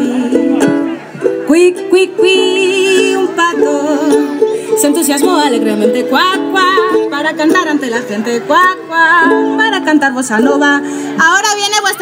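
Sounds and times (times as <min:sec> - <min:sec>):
woman singing: 0:00.0 - 0:00.8, 0:01.4 - 0:12.0
strummed ukulele chords: 0:00.0 - 0:11.1.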